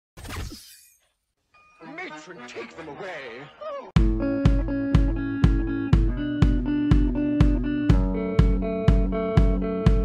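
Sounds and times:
music: 4.0s - 10.0s.

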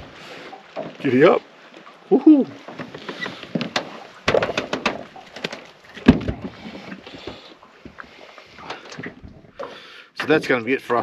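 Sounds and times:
clicks and clatters in metal boat: 2.6s - 10.6s.

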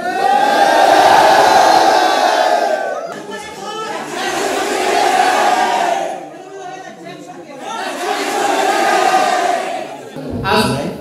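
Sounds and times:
group cheering loudly: 0.0s - 6.3s.

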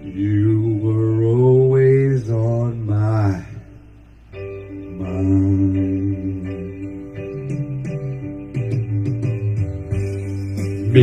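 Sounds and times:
karaoke backing music: 0.0s - 11.0s.

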